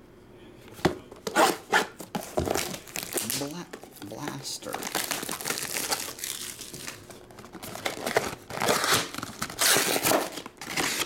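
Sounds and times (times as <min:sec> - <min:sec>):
cardboard rustling: 0:00.8 - 0:11.0
cardboard scraping and tearing: 0:07.6 - 0:11.0.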